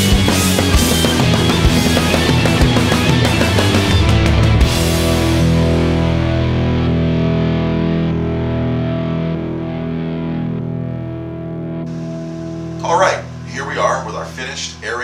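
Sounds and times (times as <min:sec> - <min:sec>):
distorted electric guitar chord ringing: 0:00.0 - 0:15.0
rock music: 0:00.0 - 0:15.0.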